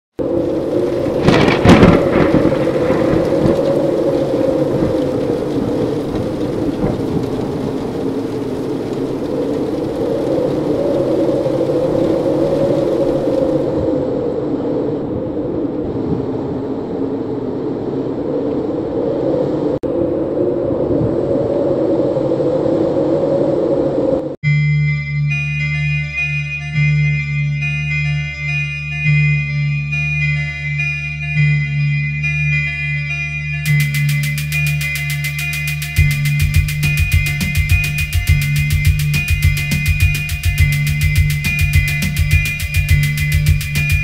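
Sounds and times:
loud thunderclap: 0.2 - 13.7, 36.0 - 44.0
rushing rain-like noise: 0.2 - 14.0, 33.7 - 44.0
deep rumble: 0.2 - 44.0.

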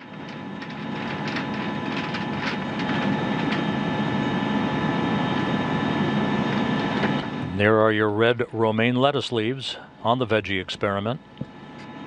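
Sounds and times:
ventilation fans whirring: 0.0 - 12.0.

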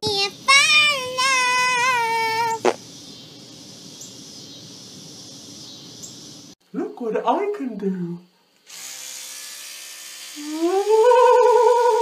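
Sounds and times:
person humming: 0.5 - 2.8, 10.4 - 12.0
electric toothbrush buzzing: 8.6 - 12.0.

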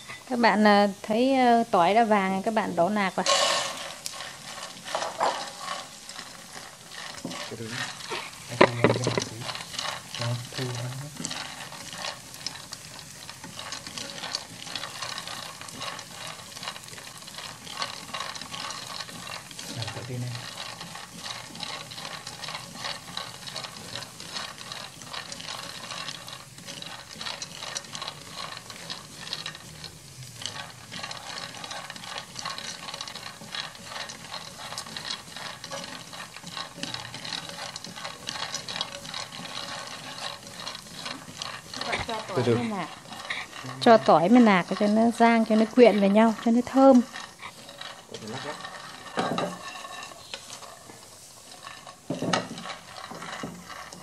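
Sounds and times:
peanuts rattling in frying pan: 0.0 - 54.0.

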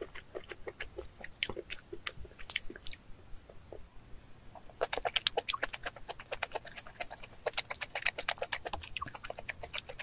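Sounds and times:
person chewing wetly: 0.0 - 3.8, 4.6 - 10.0.

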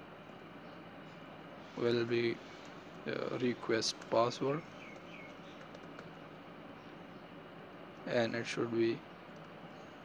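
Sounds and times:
keyboard typing: 4.9 - 6.2.

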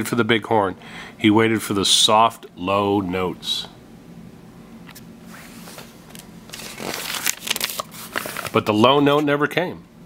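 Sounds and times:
paper page rustling and turning: 4.9 - 9.3.

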